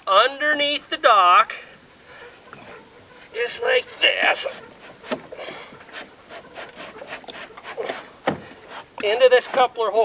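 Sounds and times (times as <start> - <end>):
rod scraping plastic floats: 2.5 - 9.8.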